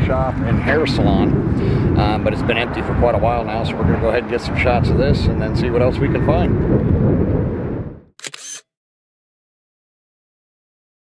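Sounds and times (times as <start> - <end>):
camera shutter click: 8.2 - 8.6.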